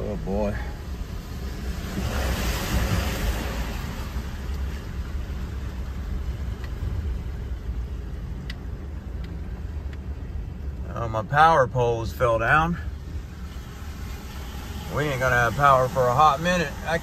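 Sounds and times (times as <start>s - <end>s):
engine and road rumble: 0.0s - 17.0s.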